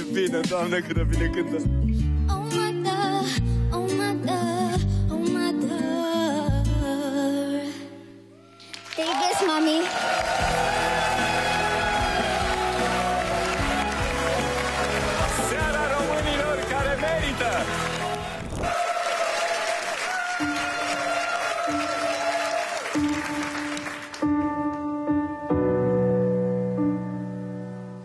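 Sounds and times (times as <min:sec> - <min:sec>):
audience applause and cheering: 0:08.4 - 0:24.4
loud song backing track: 0:10.3 - 0:18.8.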